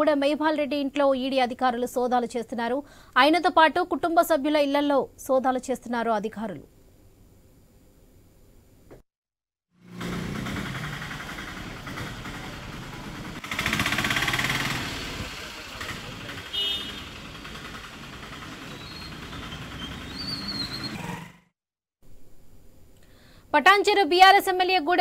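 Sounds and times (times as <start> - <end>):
passing traffic: 9.8 - 21.5.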